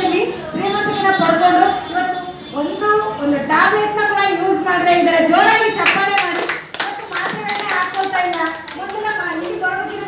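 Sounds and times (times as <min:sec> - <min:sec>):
woman speaking through microphone: 0:00.0 - 0:10.0
small group applauding: 0:05.8 - 0:09.8.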